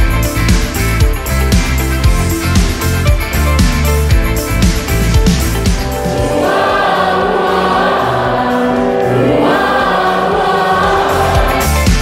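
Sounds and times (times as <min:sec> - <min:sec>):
children's choir singing: 0:06.0 - 0:12.0.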